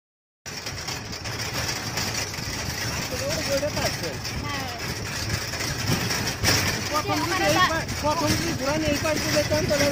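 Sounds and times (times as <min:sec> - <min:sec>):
vehicle mechanical rumble: 0:00.5 - 0:09.9.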